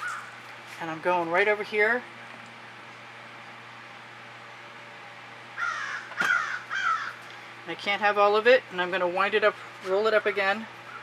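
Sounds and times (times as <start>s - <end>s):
constant low hum: 0.0s - 11.0s.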